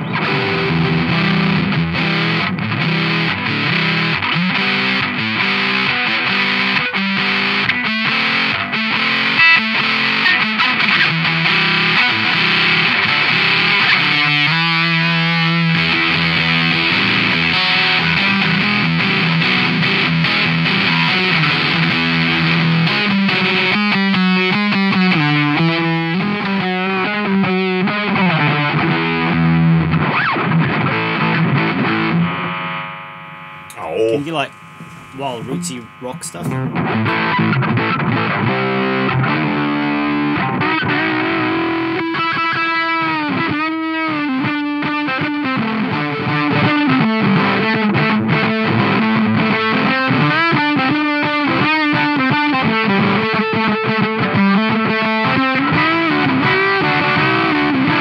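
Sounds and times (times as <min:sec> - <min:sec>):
fuzzed electric guitar: 0:00.0 - 0:58.0.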